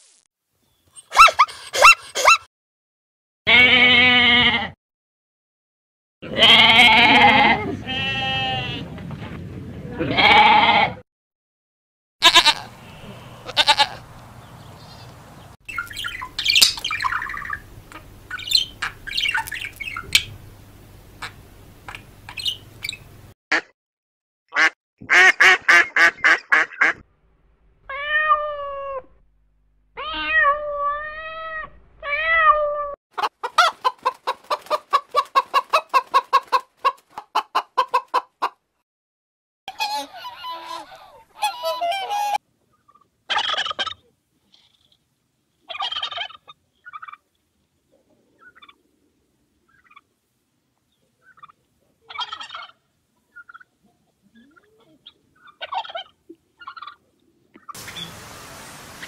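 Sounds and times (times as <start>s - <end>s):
cat meowing: 27.9s - 29.1s, 30.0s - 33.0s
turkey gobbling: 33.2s - 38.5s, 39.7s - 44.1s, 45.7s - 47.3s, 48.4s - 48.8s, 49.7s - 50.1s, 51.2s - 53.8s, 54.4s - 58.0s.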